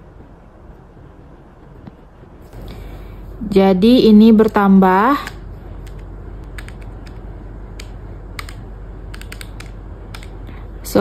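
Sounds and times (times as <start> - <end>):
pen tapping calculator keys: 4.4 - 10.4.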